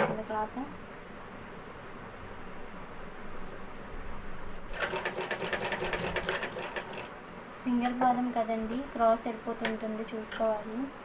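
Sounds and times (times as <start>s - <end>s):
sewing machine stitching: 4.7s - 7.1s.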